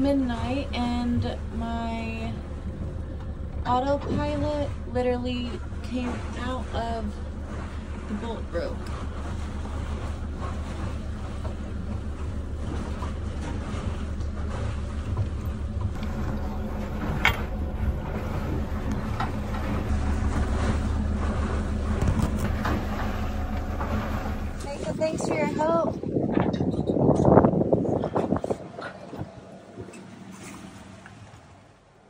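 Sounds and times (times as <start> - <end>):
boat engine droning: 0.0 - 32.0.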